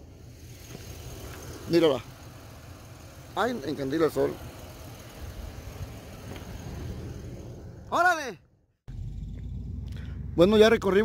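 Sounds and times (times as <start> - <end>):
pickup engine idling: 0.0 - 8.0, 8.9 - 11.0
man exclaiming: 7.9 - 8.4.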